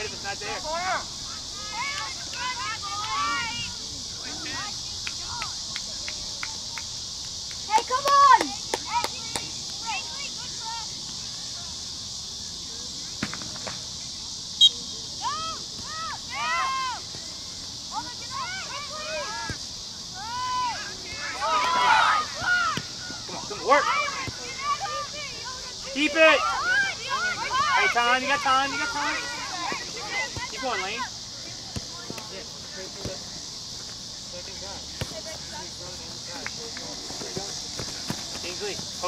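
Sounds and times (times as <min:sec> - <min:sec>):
distant shouts and calls: 0:00.0 - 0:07.0, 0:14.6 - 0:35.7
insects buzzing: 0:00.0 - 0:39.0.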